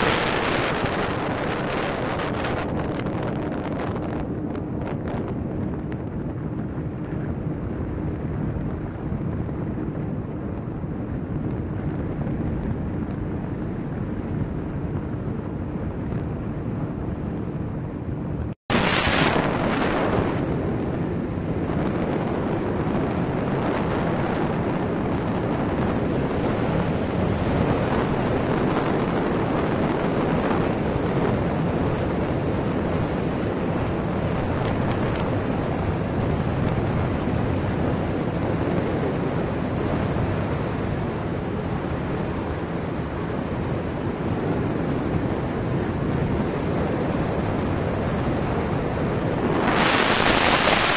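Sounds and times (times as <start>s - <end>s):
wind buffeting microphone: 0.0s - 50.9s.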